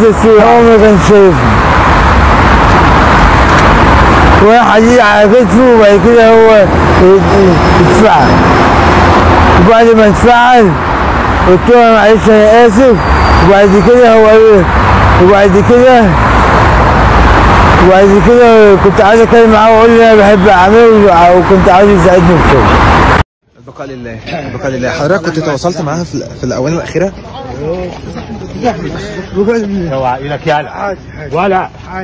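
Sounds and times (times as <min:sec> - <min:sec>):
steady road traffic noise: 0:00.0 - 0:32.0.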